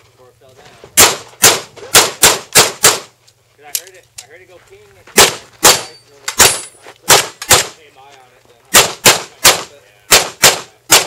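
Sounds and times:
handgun shots: 1.0s - 3.1s, 5.2s - 7.8s, 8.7s - 11.0s.

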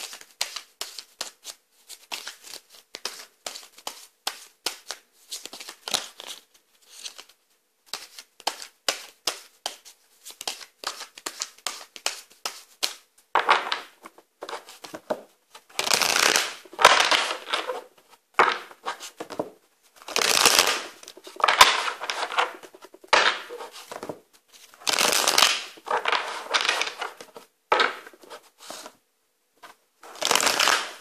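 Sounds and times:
cards being shuffled: 0.0s - 29.0s, 29.6s - 31.0s
cards riffling and rustling: 30.1s - 31.0s.

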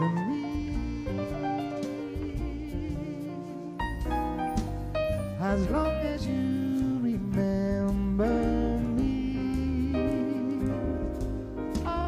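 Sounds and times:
person singing with bending notes: 0.0s - 4.3s, 5.3s - 12.0s
bass: 0.0s - 12.0s
drums: 0.0s - 12.0s.

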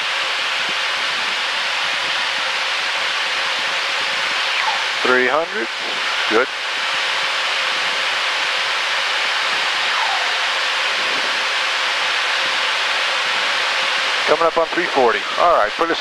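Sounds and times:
high-speed airflow: 0.0s - 16.0s
jet engine rushing hiss: 0.4s - 16.0s.

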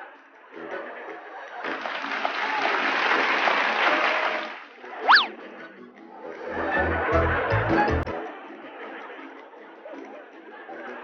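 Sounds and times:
applause: 1.6s - 4.8s.

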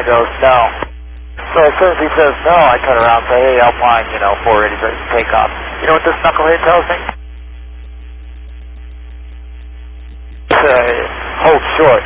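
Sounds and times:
radio electrical hum: 0.0s - 12.0s.

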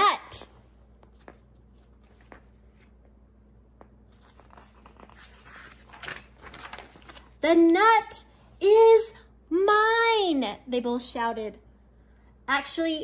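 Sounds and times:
paper page rustling: 1.0s - 3.1s, 3.8s - 7.8s.

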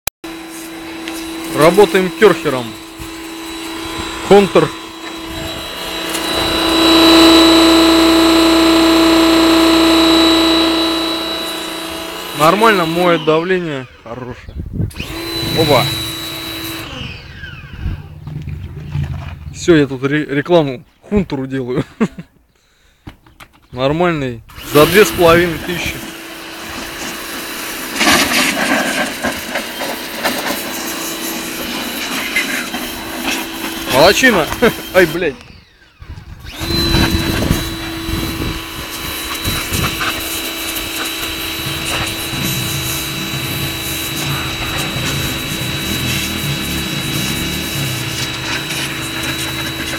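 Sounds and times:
pressure washer running: 0.2s - 14.2s, 14.9s - 18.3s, 24.5s - 35.8s, 36.4s - 49.9s.

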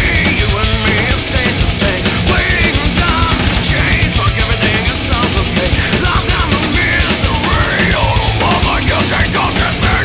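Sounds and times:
distorted electric guitars: 0.0s - 10.0s
fast dense drumming: 0.0s - 10.0s.

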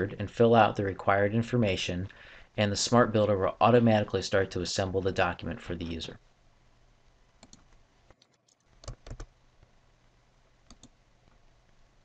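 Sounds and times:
faint background hiss: 0.0s - 12.0s
computer mouse clicks: 7.4s - 9.3s, 10.6s - 11.4s.

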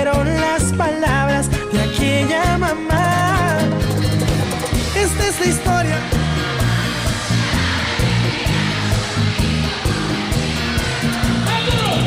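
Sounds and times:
bass line: 0.0s - 12.0s
guitar: 0.0s - 12.0s
percussion beat: 2.5s - 12.0s.

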